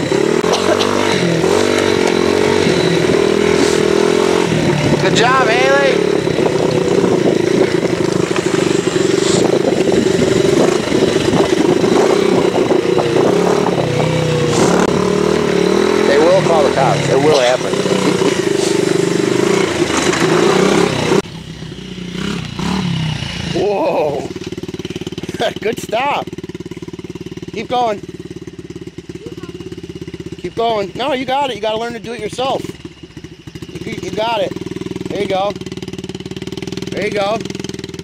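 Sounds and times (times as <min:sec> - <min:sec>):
dirt bike engine running: 0:00.0 - 0:38.0.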